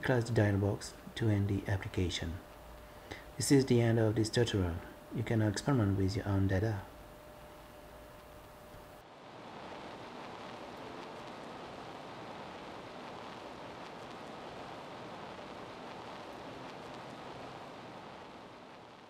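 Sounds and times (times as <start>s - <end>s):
steady even hiss: 0.0s - 19.0s.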